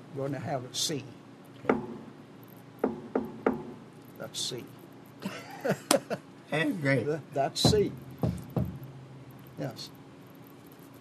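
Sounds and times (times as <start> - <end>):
knocks on a hard surface: 1.7 - 2.0, 2.8 - 3.8, 7.6 - 8.9.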